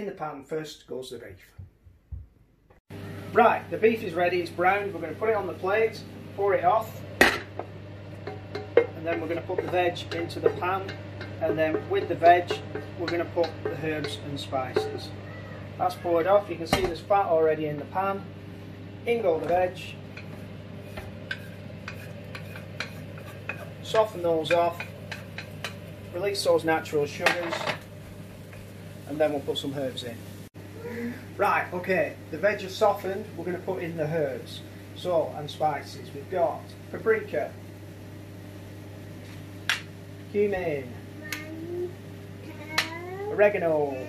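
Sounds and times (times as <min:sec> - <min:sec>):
steady low hum: 0:02.9 - 0:44.0
spatula stirring vegetables in pan: 0:07.6 - 0:15.0, 0:20.0 - 0:26.2
ceramic pots clicking: 0:08.2 - 0:15.1.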